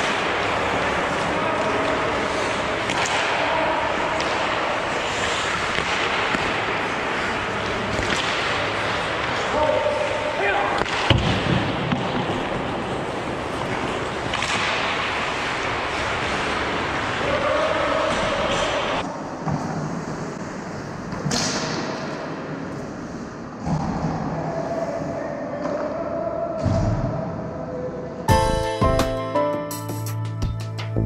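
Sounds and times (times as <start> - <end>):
skates scraping ice: 0.0 - 24.2
hockey sticks and puck knocking: 2.4 - 3.4, 4.2 - 9.4, 10.8 - 12.7.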